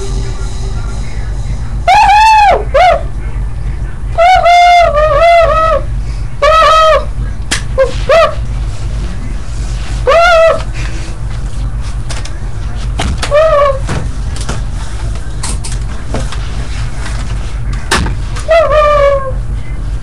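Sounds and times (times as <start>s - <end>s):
high-pitched squeaks: 0.0s - 3.2s
steady low hum: 0.0s - 20.0s.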